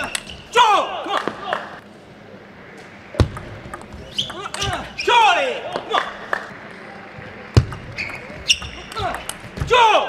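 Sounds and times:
player shouting: 0:00.5 - 0:01.8, 0:08.9 - 0:10.0
table tennis ball clicks: 0:07.6 - 0:09.5.

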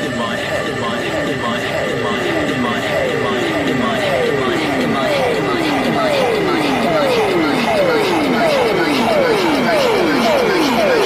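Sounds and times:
psytrance synth glides: 0:00.0 - 0:11.0
steady high synth tone: 0:00.0 - 0:11.0.

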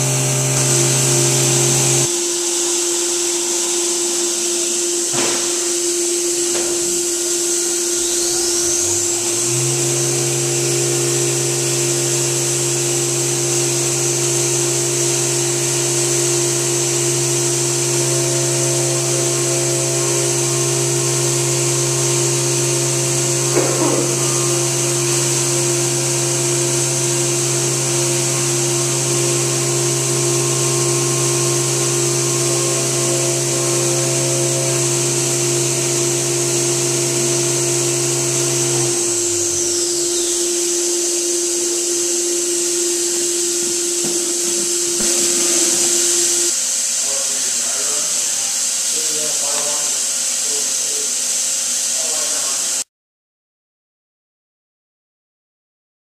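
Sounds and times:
spindle whine: 0:00.0 - 0:52.6
coolant spray hiss: 0:00.0 - 0:52.8
milling machine drone: 0:00.0 - 0:52.8.

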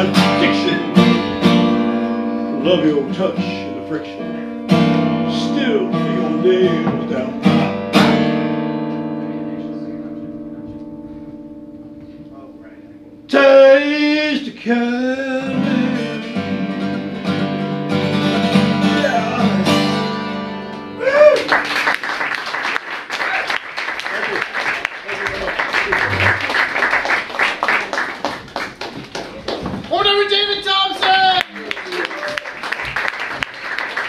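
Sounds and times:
acoustic guitar chord ringing: 0:00.0 - 0:21.0
audience applauding: 0:21.0 - 0:34.0.

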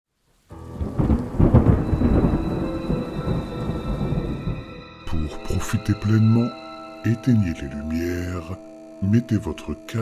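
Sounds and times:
rain falling: 0:00.2 - 0:04.8
thunder rumbling: 0:00.5 - 0:04.9.

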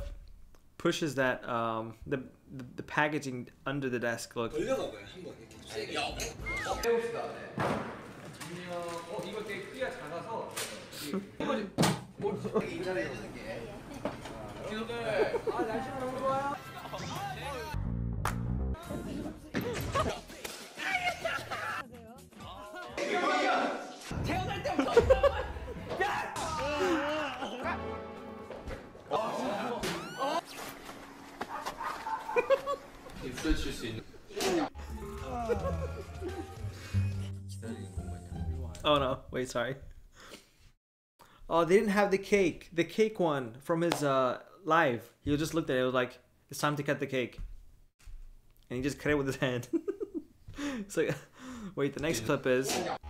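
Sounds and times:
person yelping: 0:26.2 - 0:27.6.

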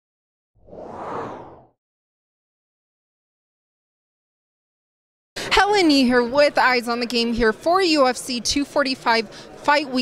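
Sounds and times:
whoosh sound effect: 0:00.6 - 0:01.8.

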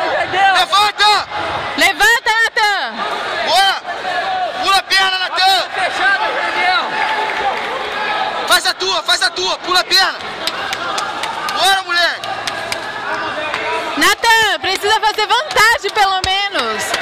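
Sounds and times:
crowd background din: 0:00.0 - 0:17.0.

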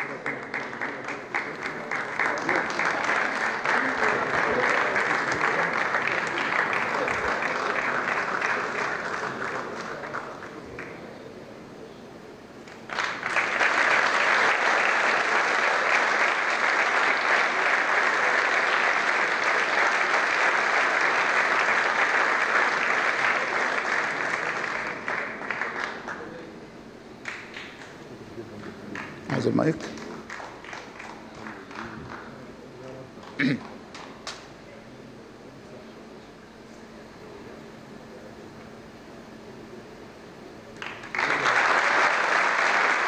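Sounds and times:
audience applauding: 0:00.0 - 0:11.1, 0:12.7 - 0:26.5, 0:27.2 - 0:28.0, 0:28.6 - 0:32.5, 0:40.8 - 0:43.0.

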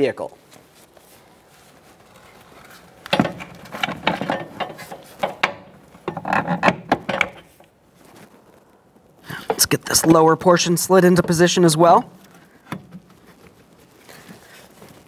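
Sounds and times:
shock absorber knocking and rubbing: 0:02.2 - 0:07.6.

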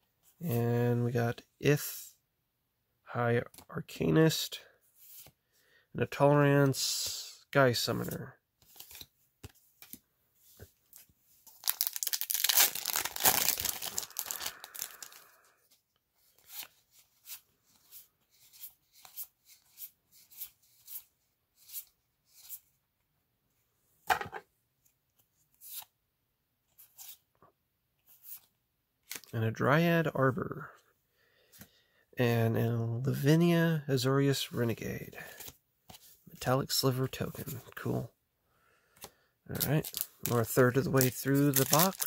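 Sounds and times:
foil pack tearing: 0:11.6 - 0:15.2, 0:41.4 - 0:42.0.

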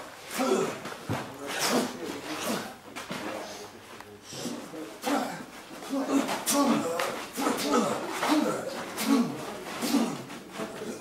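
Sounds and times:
indistinct voices: 0:00.3 - 0:11.0.

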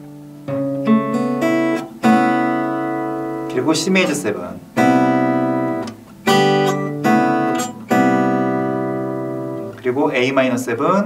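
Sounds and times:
acoustic guitar chord strums: 0:00.0 - 0:11.0.

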